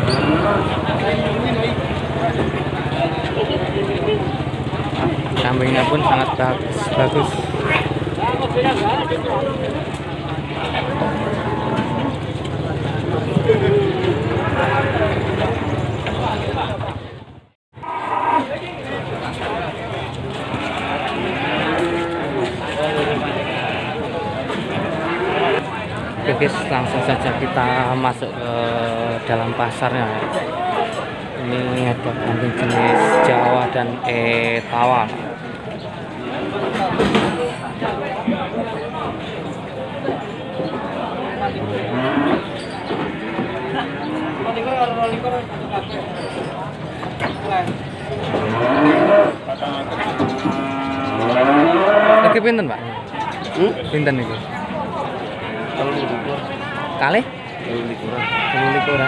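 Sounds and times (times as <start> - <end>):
crowd chatter: 0.0 - 59.0
cattle mooing: 10.6 - 12.3, 17.8 - 18.7, 20.4 - 25.7, 31.6 - 34.0, 41.5 - 44.9, 48.2 - 52.4, 55.3 - 56.4, 58.1 - 59.0
livestock calling: 58.0 - 59.0.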